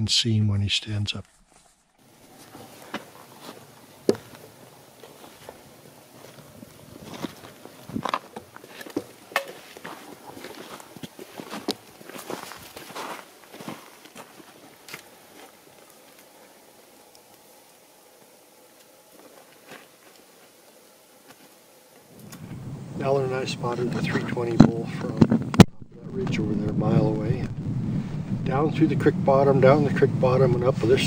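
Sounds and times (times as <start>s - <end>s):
footsteps on stony ground: 1.3s - 16.6s, 19.1s - 20.6s.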